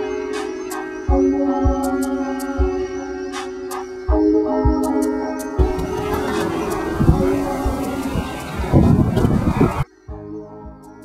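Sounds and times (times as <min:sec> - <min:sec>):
background music: 0:00.0 - 0:11.0
wind noise on microphone: 0:05.6 - 0:09.8.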